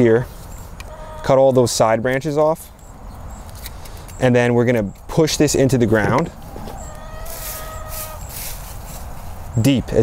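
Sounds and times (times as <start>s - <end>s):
hands rustling in mulch and soil: 6.3s - 10.0s.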